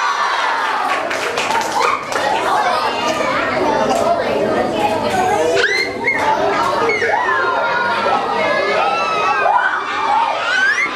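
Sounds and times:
children chattering and calling out: 0.0s - 10.9s.

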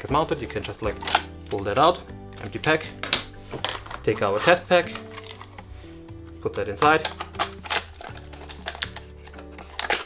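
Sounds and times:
background music with bass: 0.0s - 10.0s.

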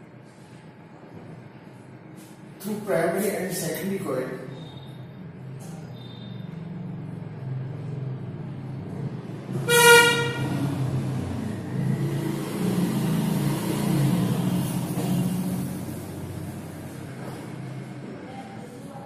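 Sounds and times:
road traffic rumble: 0.0s - 19.0s
vehicle horn honk: 9.6s - 10.7s.

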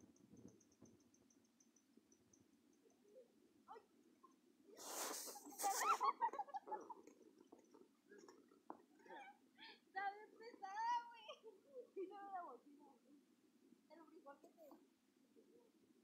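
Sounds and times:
stifled laughter: 5.4s - 7.1s.

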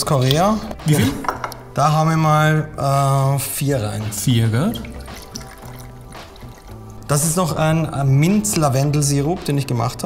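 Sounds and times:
background music: 0.0s - 10.0s
liquid pouring into metal jigger: 4.6s - 7.1s.

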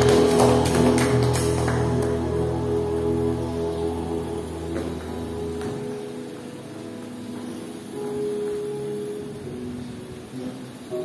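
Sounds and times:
soft keyboard chords: 0.0s - 11.0s.

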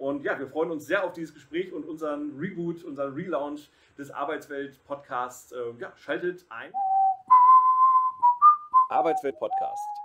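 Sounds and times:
person whistling a tune: 6.8s - 10.0s.

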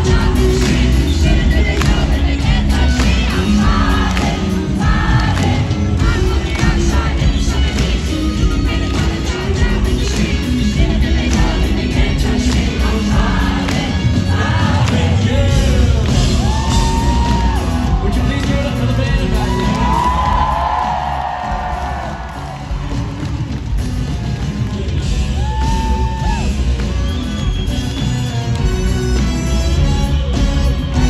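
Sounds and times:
live rock band: 0.0s - 31.0s.

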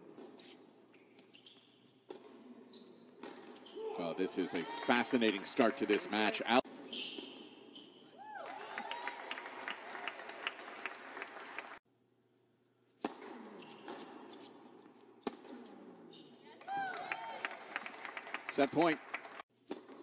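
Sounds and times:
shoe squeaks: 0.3s - 4.0s, 6.7s - 8.2s, 13.4s - 14.6s, 15.5s - 16.5s
crowd applauding: 4.6s - 6.6s, 8.4s - 11.8s, 16.6s - 19.4s.

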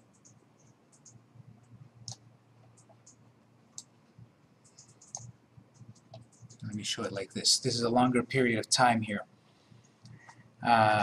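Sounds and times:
computer mouse clicks: 0.0s - 4.0s, 4.6s - 6.8s, 9.8s - 10.4s
low steady hum: 0.0s - 11.0s.

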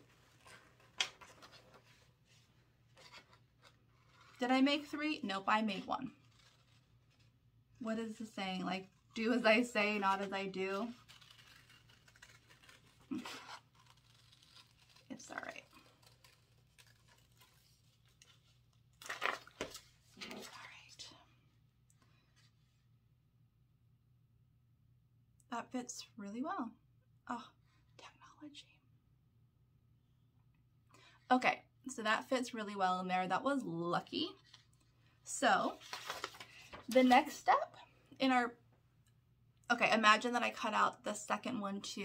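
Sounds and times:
paper rustling: 0.0s - 7.4s, 8.2s - 20.7s, 35.6s - 37.5s
scissors cutting paper: 10.1s - 17.6s.

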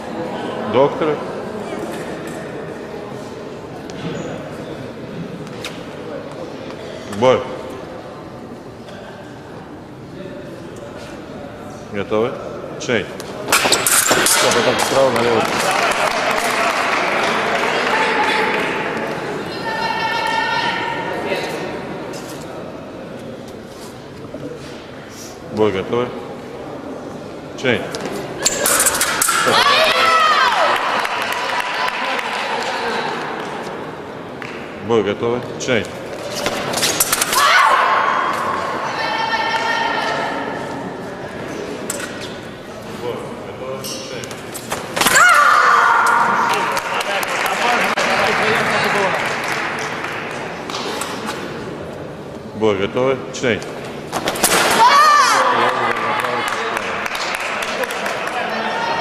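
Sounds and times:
sabre blades clashing: 28.4s - 29.7s
high-pitched shout: 54.8s - 55.5s.

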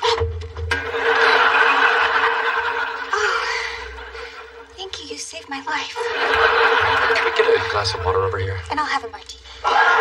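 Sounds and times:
crowd noise: 0.7s - 8.7s, 9.6s - 10.0s.

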